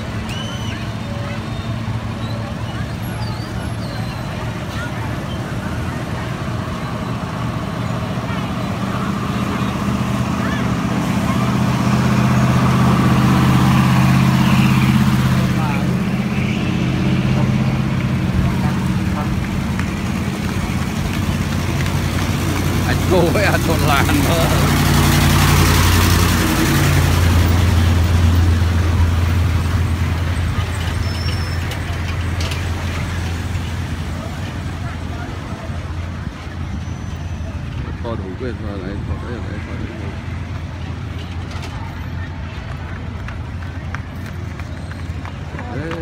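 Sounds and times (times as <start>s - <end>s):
motorbike and car engines droning: 0.0s - 46.0s
people's voices: 0.0s - 46.0s
street din: 0.0s - 46.0s.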